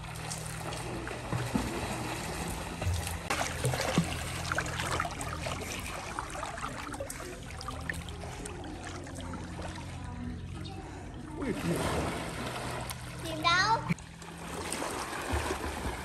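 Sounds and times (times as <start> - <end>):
low steady hum: 0.0 - 16.0
pool water splashing: 0.0 - 16.0.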